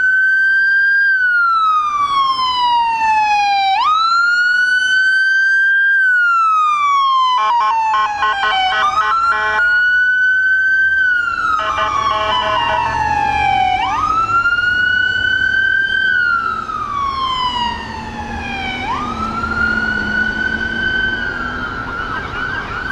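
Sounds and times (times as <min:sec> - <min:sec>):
fire truck siren wailing: 0:00.0 - 0:22.9
pulsing horn-like tone: 0:07.4 - 0:09.9, 0:11.6 - 0:13.0.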